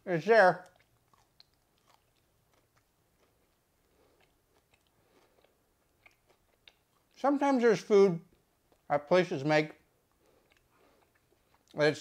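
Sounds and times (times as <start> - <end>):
person chewing with mouth clicks: 0.6 - 7.2, 8.3 - 8.9, 10.0 - 11.8.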